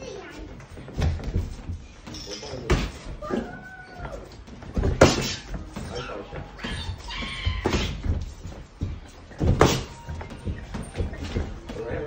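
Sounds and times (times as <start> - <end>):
gloves and feet thudding on canvas: 2.6 - 12.0.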